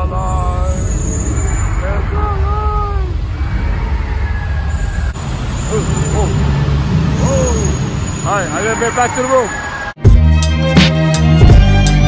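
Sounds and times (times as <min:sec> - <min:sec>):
deep rumble: 0:00.0 - 0:08.5
voices calling: 0:00.0 - 0:10.0.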